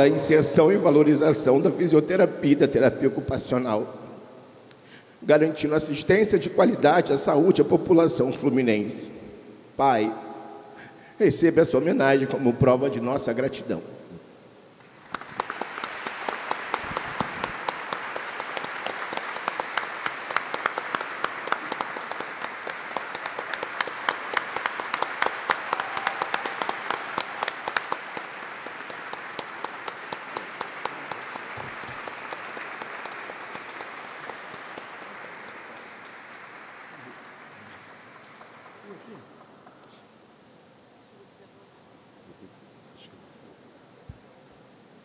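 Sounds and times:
audience applauding: 14.8s - 40.1s.

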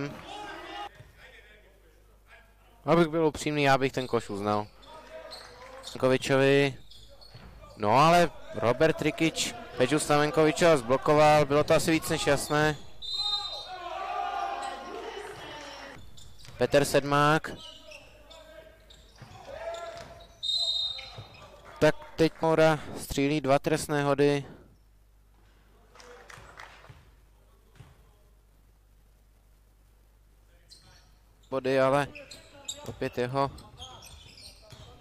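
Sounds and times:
sports hall background: 0.0s - 35.0s.

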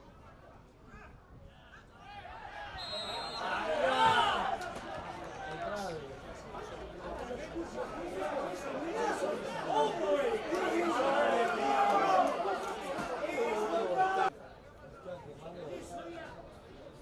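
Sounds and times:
men talking and calling: 2.3s - 14.4s.

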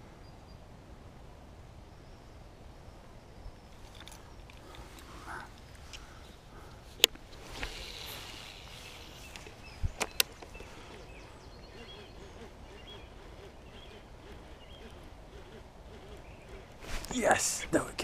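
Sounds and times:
fishing reel clicks: 7.6s - 10.4s.

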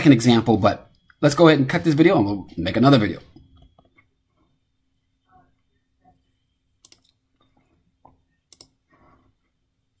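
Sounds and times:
computer mouse clicks: 6.8s - 9.2s.

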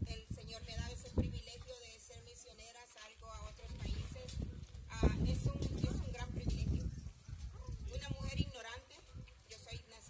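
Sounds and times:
low microphone rumble: 0.0s - 1.6s, 3.2s - 8.6s.

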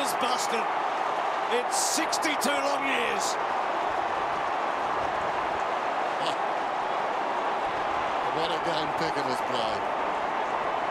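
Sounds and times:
stadium crowd cheering: 0.0s - 10.9s.

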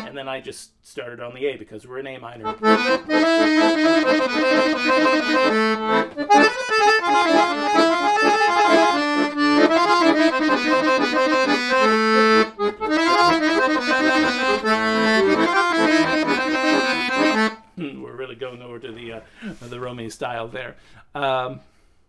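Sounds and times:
man talking: 0.0s - 2.6s, 17.8s - 21.7s
accordion melody: 2.4s - 17.7s.

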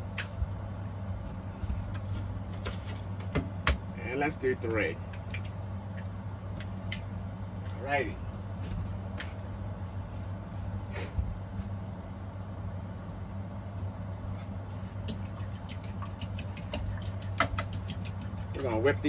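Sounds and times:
low hum: 0.0s - 19.0s
eggs cracking on wooden bowl: 15.0s - 18.6s.

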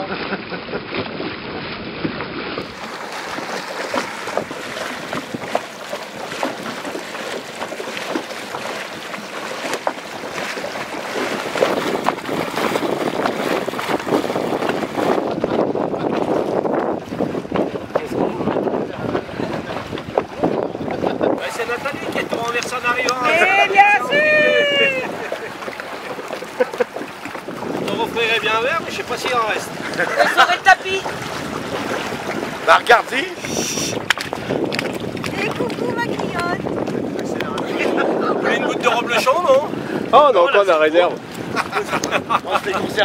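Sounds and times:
water splashing and lapping: 0.0s - 43.0s
wind buffeting microphone: 1.1s - 43.0s.

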